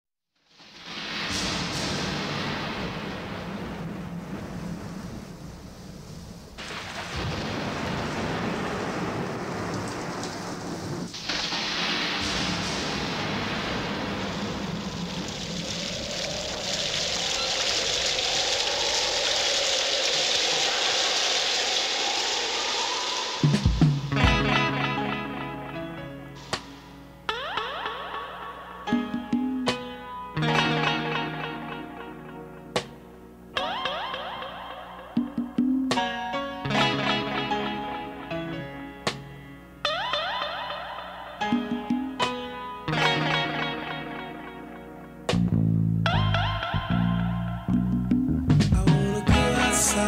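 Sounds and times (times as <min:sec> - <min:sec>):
heavy rain: 0:00.5 - 0:25.7
low rolling thunder: 0:01.0 - 0:24.7
band music: 0:23.4 - 0:27.0, 0:35.2 - 0:39.3, 0:41.4 - 0:50.0.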